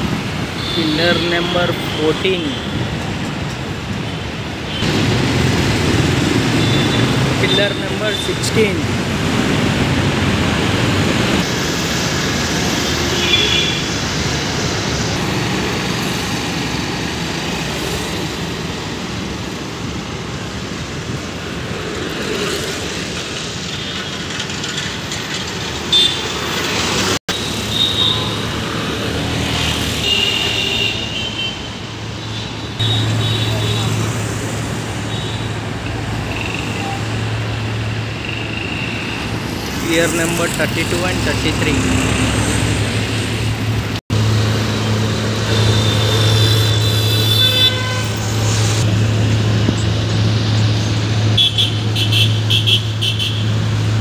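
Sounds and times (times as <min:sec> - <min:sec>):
road traffic passing: 0:00.0 - 0:54.0
vehicle horns: 0:00.5 - 0:02.8, 0:06.4 - 0:08.6, 0:12.8 - 0:14.0, 0:25.9 - 0:26.4, 0:27.3 - 0:28.5, 0:29.9 - 0:34.1, 0:35.0 - 0:35.6, 0:45.4 - 0:48.9, 0:51.3 - 0:53.6.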